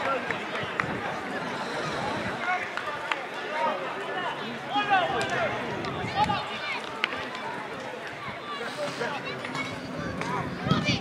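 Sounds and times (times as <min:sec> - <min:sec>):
people shouting and calling: 0:00.0 - 0:11.0.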